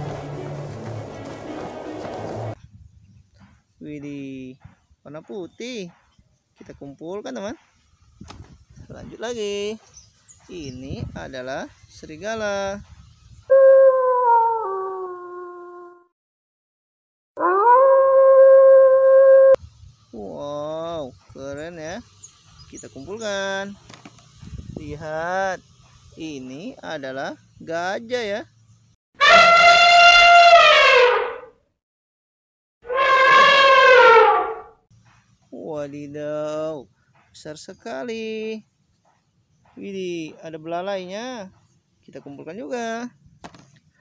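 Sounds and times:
elephant trumpeting: 0:13.5 - 0:15.6, 0:29.2 - 0:31.5, 0:32.8 - 0:34.7
wolf howling: 0:17.4 - 0:19.6.

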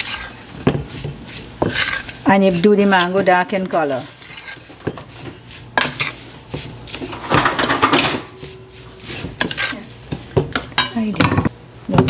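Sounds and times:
spoon scraping metal pot: 0:00.0 - 0:11.0.

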